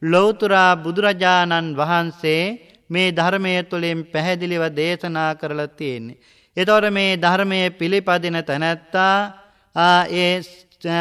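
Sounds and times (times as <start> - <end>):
man chanting a sermon: 0.0 - 11.0.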